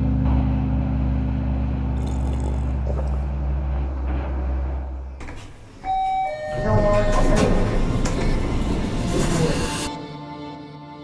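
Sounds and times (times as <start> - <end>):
low elevator hum: 0.0 - 9.9
single-tone elevator chime: 5.8 - 7.2.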